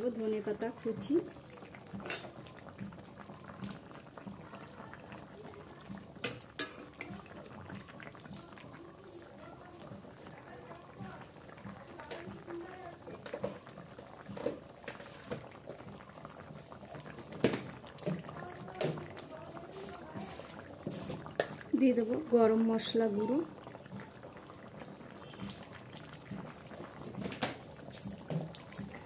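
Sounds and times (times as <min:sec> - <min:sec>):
curry bubbling at a boil: 0:00.0 - 0:29.0.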